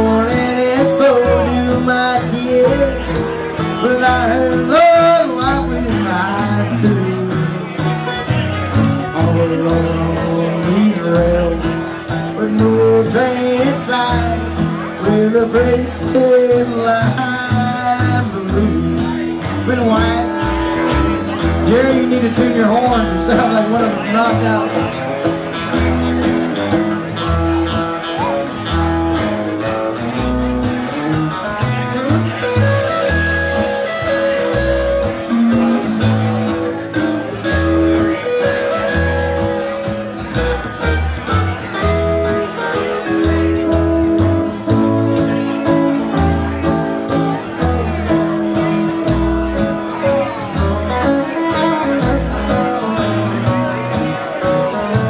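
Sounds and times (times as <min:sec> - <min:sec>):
bass line: 0:00.0 - 0:55.0
country band playing: 0:00.0 - 0:55.0
drums keeping time: 0:00.0 - 0:55.0
electric guitar lead: 0:00.0 - 0:55.0.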